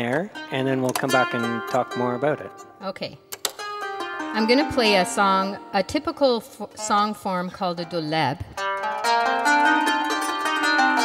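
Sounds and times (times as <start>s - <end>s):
plucked zither notes: 0.0s - 2.8s, 3.4s - 11.0s.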